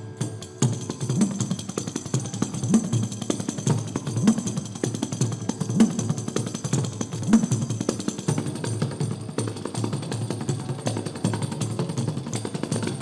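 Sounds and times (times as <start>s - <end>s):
jingle rattling: 0.0s - 13.0s.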